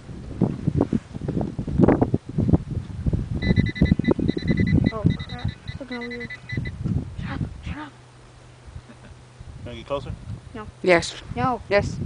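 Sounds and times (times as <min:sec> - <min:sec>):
wind buffeting microphone: 0:00.0 - 0:07.9, 0:08.6 - 0:12.0
high-pitched chirps: 0:03.4 - 0:06.8.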